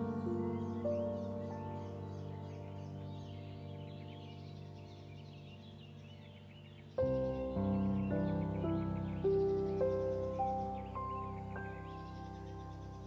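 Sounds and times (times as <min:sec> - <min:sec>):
birds chirping: 0:00.0 - 0:13.0
soft ambient keyboard music: 0:00.0 - 0:13.0.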